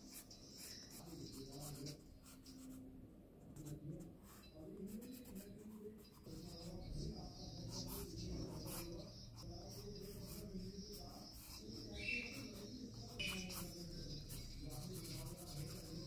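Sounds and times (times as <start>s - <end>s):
pencil scratching on paper: 0.0s - 2.8s, 3.6s - 16.0s.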